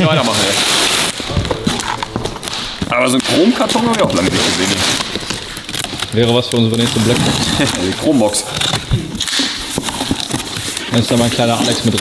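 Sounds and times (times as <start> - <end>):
rustling of wrapping: 0.0 - 12.0
knife cutting plastic straps: 3.6 - 12.0.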